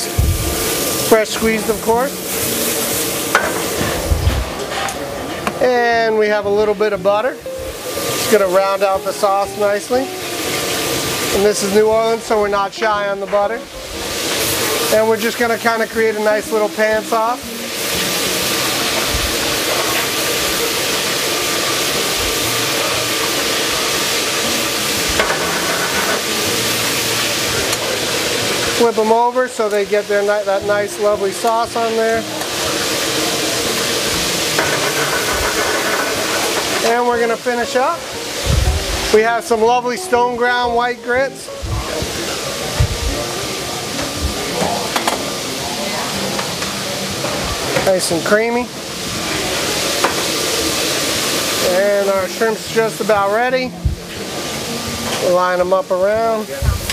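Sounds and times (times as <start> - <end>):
kitchen hiss: 0.0 - 56.9
shrimp sizzling in a skillet: 0.0 - 56.9.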